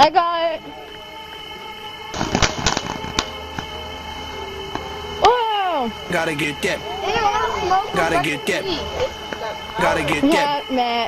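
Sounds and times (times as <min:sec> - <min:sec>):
background music: 0:00.0 - 0:11.0
firework fountain crackling: 0:02.1 - 0:05.0.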